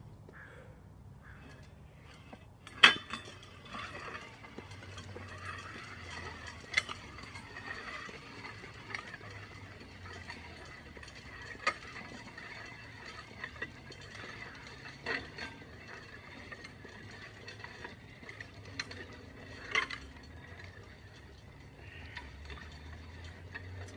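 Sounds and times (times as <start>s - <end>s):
sled scraping over asphalt: 1.3s - 23.9s
weight plates clanking: 1.4s - 23.9s.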